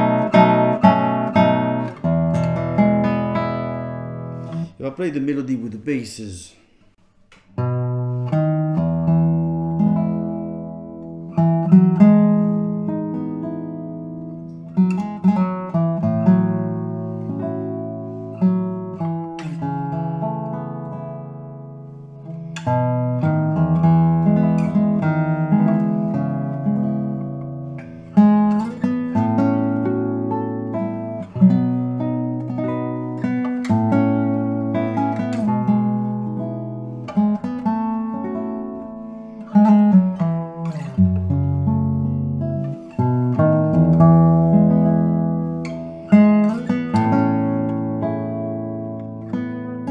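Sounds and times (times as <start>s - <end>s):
classical guitar fingerstyle: 0.0s - 4.8s, 7.3s - 49.9s.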